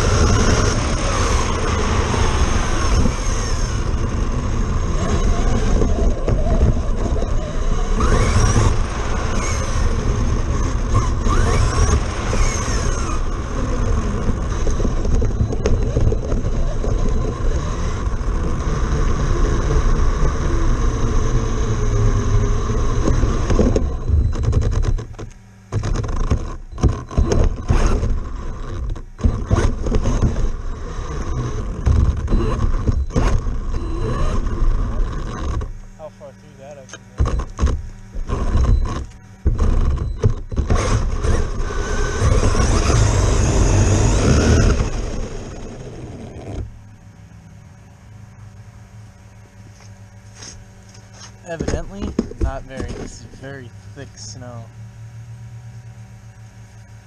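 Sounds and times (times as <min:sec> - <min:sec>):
tires rumbling on pavement: 0:00.0 - 0:56.8
electric motor whine: 0:00.0 - 0:57.0.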